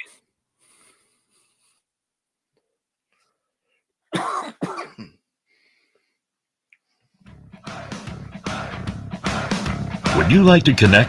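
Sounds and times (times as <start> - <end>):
man coughing: 4.1 - 5.2.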